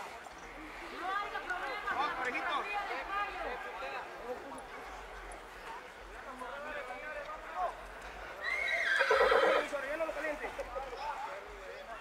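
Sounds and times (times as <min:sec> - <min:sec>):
horse whinnying: 0:08.4 - 0:09.7.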